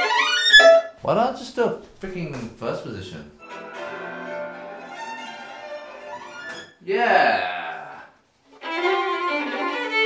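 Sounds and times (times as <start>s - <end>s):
violin playing: 0.0s - 1.0s, 3.4s - 6.6s, 8.5s - 10.0s.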